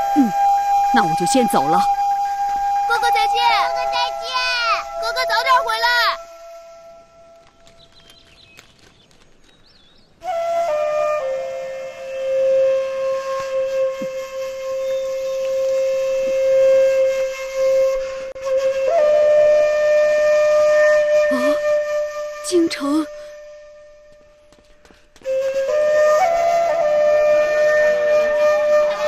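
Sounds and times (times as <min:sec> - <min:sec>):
slow flute melody: 0:00.0 - 0:08.6, 0:10.1 - 0:29.0.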